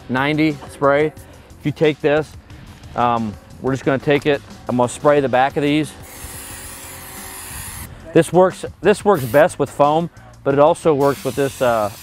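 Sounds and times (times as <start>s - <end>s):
aerosol can spraying: 6.0s - 7.9s, 9.2s - 9.5s, 11.0s - 12.0s.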